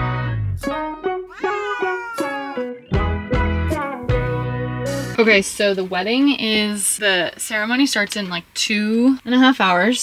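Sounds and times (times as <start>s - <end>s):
background guitar music: 0.0s - 5.2s
cat meowing: 1.3s - 2.7s.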